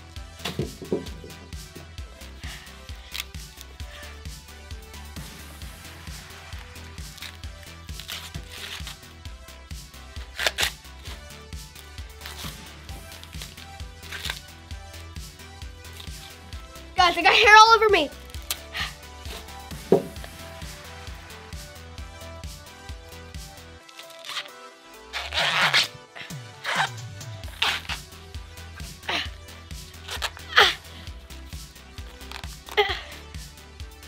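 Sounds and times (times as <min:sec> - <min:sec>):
background music with steady beat: 0:00.0 - 0:34.0
corn husks being torn: 0:02.9 - 0:03.8, 0:06.4 - 0:09.1, 0:10.2 - 0:11.2, 0:12.1 - 0:14.5, 0:15.9 - 0:16.3, 0:18.2 - 0:19.5, 0:23.8 - 0:28.1, 0:29.9 - 0:30.8, 0:32.0 - 0:32.8.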